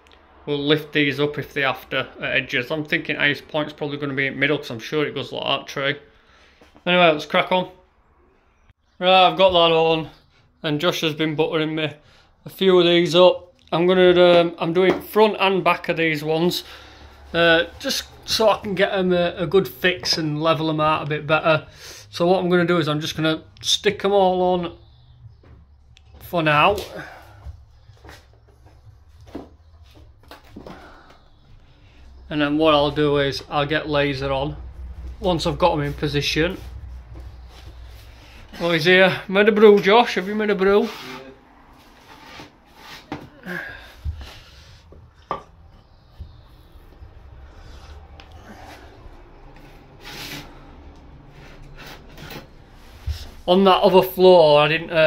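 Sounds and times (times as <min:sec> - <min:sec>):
tiles scraping and rubbing: 0:40.2 - 0:45.5, 0:49.5 - 0:53.5.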